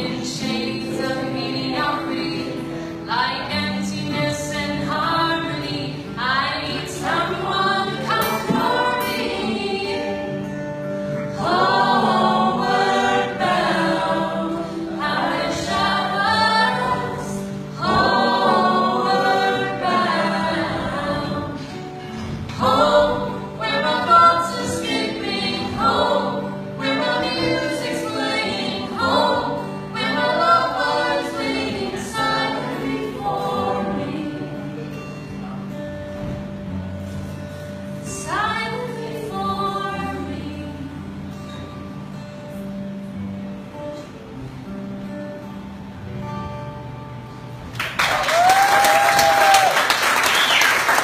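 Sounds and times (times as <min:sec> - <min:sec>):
woman singing: 0:00.0 - 0:10.5, 0:11.4 - 0:21.8, 0:22.5 - 0:34.7, 0:38.0 - 0:41.2
strummed acoustic guitars: 0:00.0 - 0:48.0.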